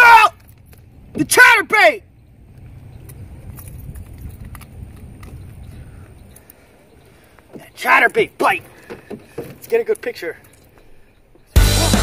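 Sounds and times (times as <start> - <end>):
wind rumble on microphone: 2.2 - 6.4
faint clicks: 2.5 - 7.6.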